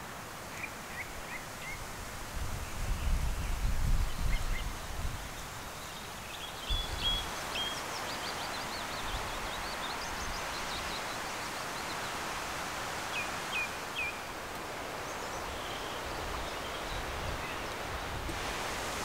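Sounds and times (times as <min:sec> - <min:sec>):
leaves rustling: 0:00.0 - 0:19.0
small birds singing: 0:02.6 - 0:12.3, 0:13.0 - 0:18.3.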